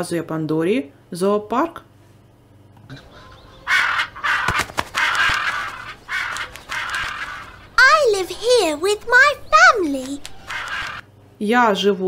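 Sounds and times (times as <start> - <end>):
crow cawing: 3.0 - 11.1.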